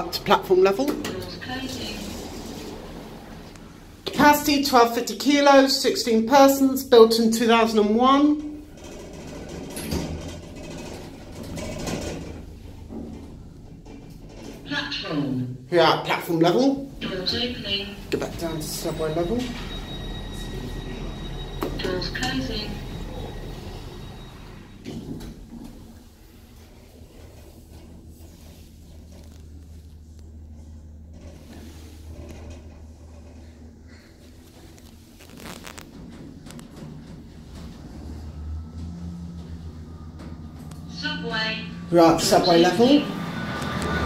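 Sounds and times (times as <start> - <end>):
lift car humming: 0.0 - 15.2, 16.1 - 44.0
lift doors knocking shut: 8.6 - 14.7
lift machinery humming: 16.8 - 29.7, 36.1 - 44.0.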